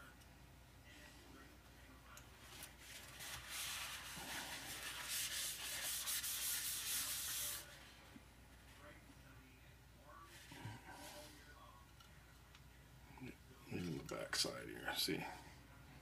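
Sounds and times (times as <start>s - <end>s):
cloth rag rubbing: 2.6s - 7.8s.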